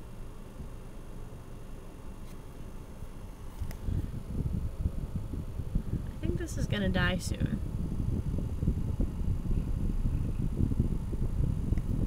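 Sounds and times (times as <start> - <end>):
wind buffeting microphone: 3.6 - 12.0.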